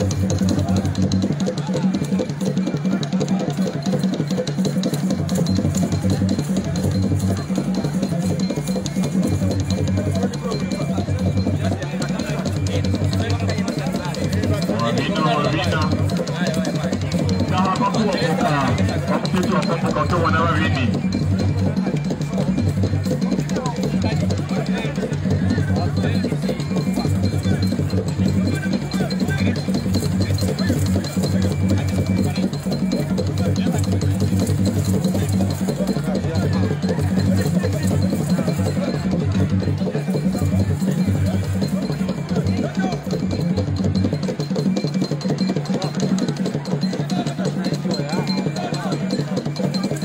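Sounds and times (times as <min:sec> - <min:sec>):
crowd voices: 0:00.0 - 0:50.0
deeper drum: 0:00.0 - 0:50.0
fast traditional drumming: 0:00.0 - 0:50.0.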